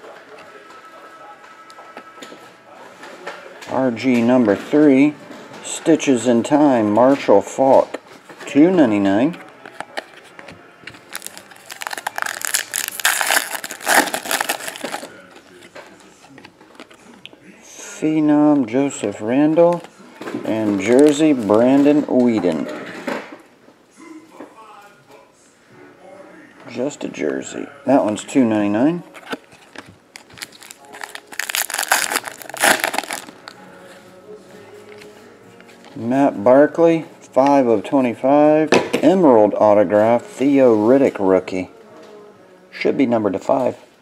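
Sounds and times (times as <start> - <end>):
foil wrapper tearing and crinkling: 11.1 - 15.2, 30.2 - 33.5.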